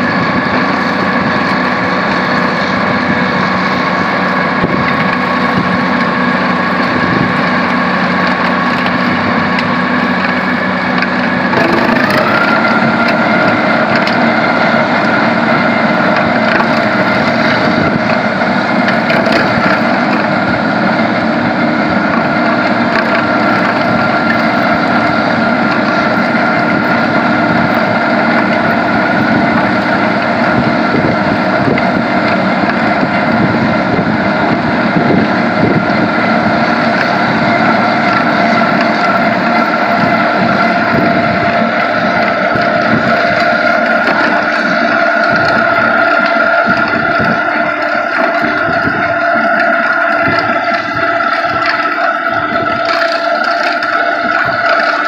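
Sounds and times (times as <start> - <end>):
cutting wheel chewing through soil: 0.0 - 55.0
tractor engine hum: 0.0 - 55.0.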